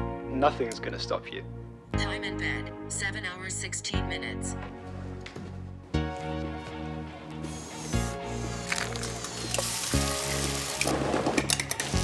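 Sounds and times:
background music with bass: 0:04.0 - 0:12.0
eggs sizzling in a frying pan: 0:08.0 - 0:11.2
utensils clicking against pan: 0:08.8 - 0:09.8, 0:10.4 - 0:12.0.

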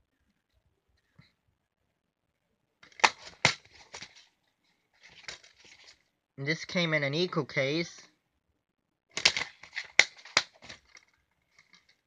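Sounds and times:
sharp plastic snaps: 0:02.8 - 0:04.2, 0:09.1 - 0:12.0
plastic case handling rustle: 0:02.8 - 0:06.1, 0:09.2 - 0:12.0.

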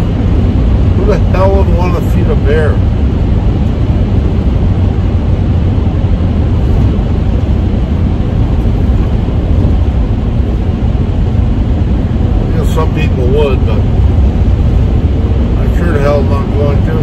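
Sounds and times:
van engine and road noise: 0:00.0 - 0:17.0.

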